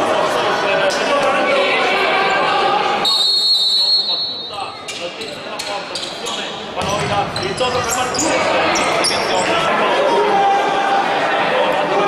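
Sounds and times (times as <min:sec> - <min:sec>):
referee's whistle: 0:03.0 - 0:04.8
ball and feet knocking on court floor: 0:06.8 - 0:07.9.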